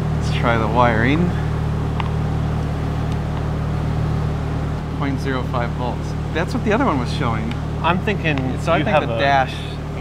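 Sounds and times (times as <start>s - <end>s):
motor droning hum: 0.0s - 10.0s.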